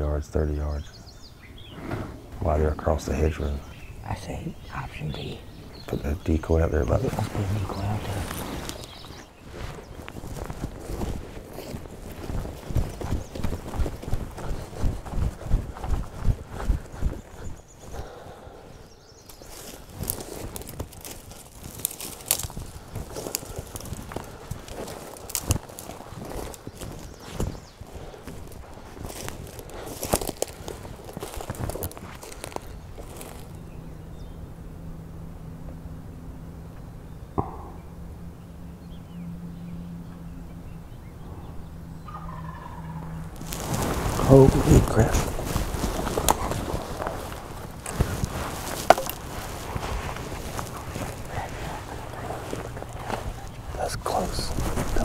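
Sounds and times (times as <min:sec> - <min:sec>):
low hum: 0:01.7 - 0:55.0
twigs crackling and rustling: 0:04.7 - 0:18.3, 0:19.2 - 0:33.9, 0:42.1 - 0:55.0
footsteps through dry grass: 0:07.0 - 0:34.2, 0:42.1 - 0:55.0.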